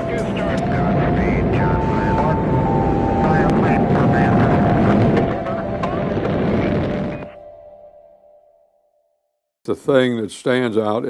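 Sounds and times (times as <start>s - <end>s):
faint radio voices: 0.0s - 7.4s
rocket launch rumble: 0.0s - 7.4s.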